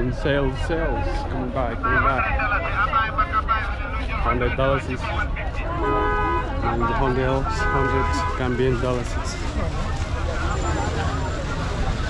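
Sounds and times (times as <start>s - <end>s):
street traffic rumble: 0.0s - 12.0s
voices talking: 0.0s - 12.0s.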